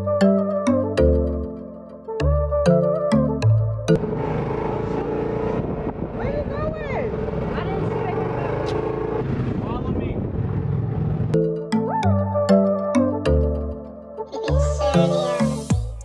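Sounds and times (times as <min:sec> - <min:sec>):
music: 0:00.0 - 0:04.0, 0:11.4 - 0:16.0
road and wind noise: 0:04.0 - 0:11.4
utv engine running: 0:04.0 - 0:11.4.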